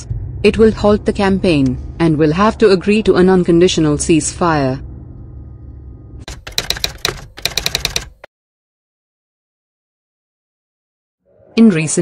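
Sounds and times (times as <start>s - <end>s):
low hum: 0.0s - 6.3s
typewriter key clicks: 6.3s - 8.2s.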